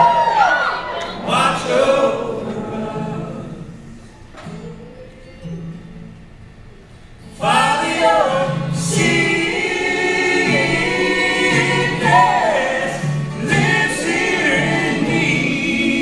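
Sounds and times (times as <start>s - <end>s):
voices singing in harmony: 0.0s - 4.0s, 7.3s - 16.0s
strummed acoustic guitar: 1.2s - 16.0s.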